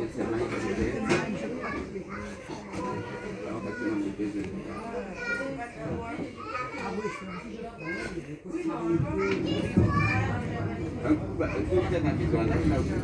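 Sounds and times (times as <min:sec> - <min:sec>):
children playing and chattering: 0:00.0 - 0:13.0.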